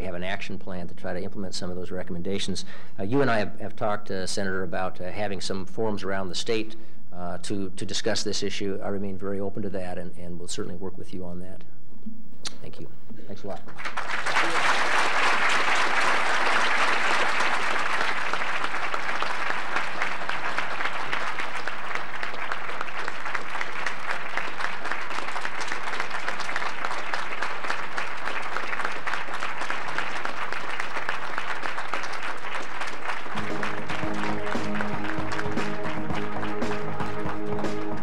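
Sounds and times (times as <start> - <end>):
large audience applauding: 13.7 - 38.0
music with sustained notes: 33.3 - 38.0.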